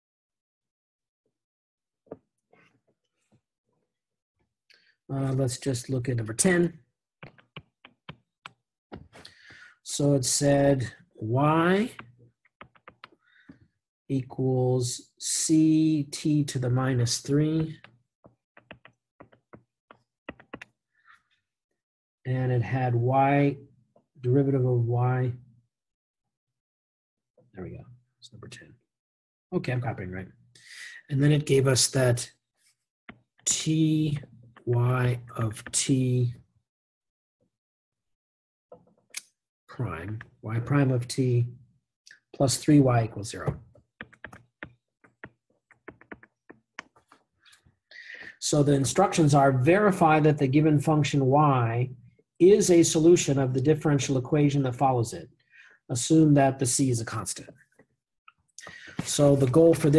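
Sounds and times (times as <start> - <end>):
stylus tapping on tablet screen: 7.2 - 9.7, 11.7 - 13.7, 17.2 - 20.8, 43.4 - 47.3.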